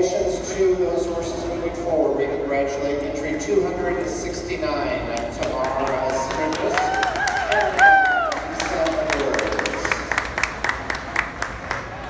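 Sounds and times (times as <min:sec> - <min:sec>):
audience clapping: 0:05.1 - 0:12.0
person whooping: 0:06.1 - 0:08.5.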